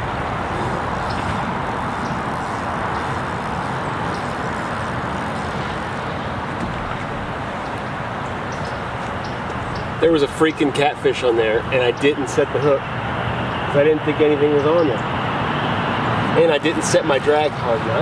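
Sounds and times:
road traffic rushing: 0.0 - 18.0.

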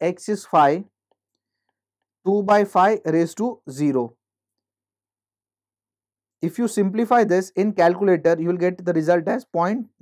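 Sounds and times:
man speaking: 0.0 - 0.9, 2.3 - 4.2, 6.4 - 10.0.

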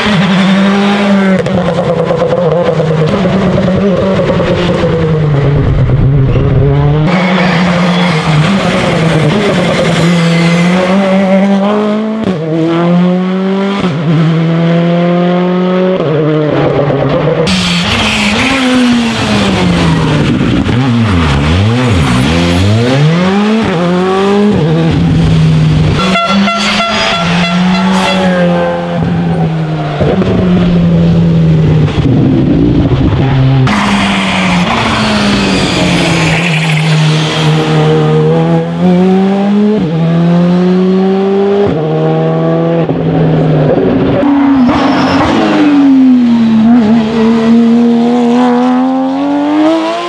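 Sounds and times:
rally car engines at full throttle: 0.0 - 50.0.

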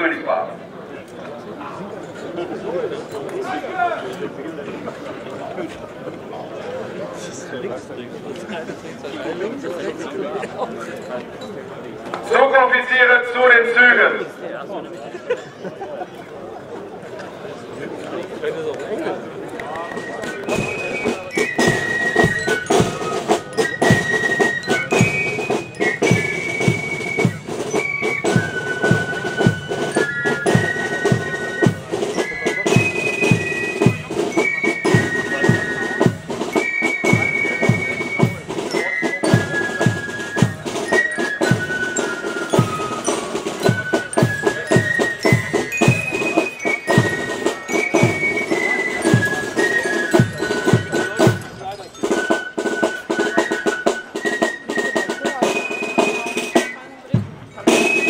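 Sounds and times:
flutes playing march melody: 19.5 - 58.0
marching drum beat: 20.5 - 58.0.

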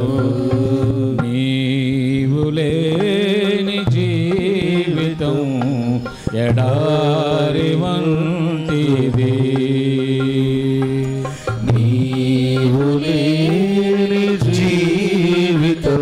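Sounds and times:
man singing a slow hymn: 0.0 - 16.0.

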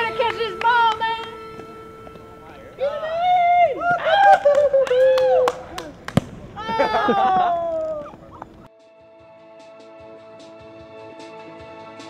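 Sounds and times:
man yelling excitedly: 6.6 - 8.0.

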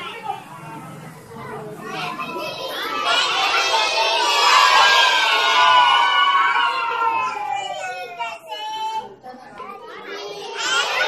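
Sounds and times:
children shouting and cheering: 1.6 - 11.0.

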